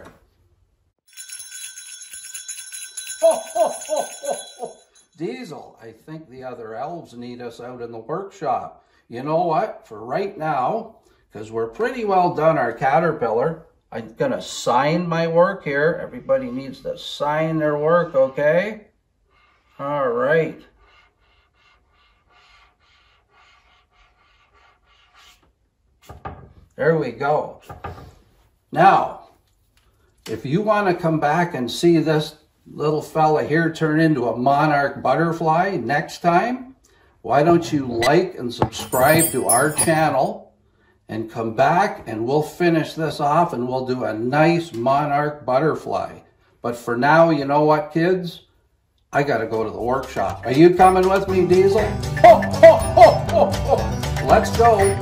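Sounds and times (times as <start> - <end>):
small bells jingling: 1.0 - 5.2, 38.6 - 40.3, 50.6 - 55.0
man laughing: 3.2 - 4.8, 52.2 - 54.0
marker pen scratching on paper: 20.8 - 26.2.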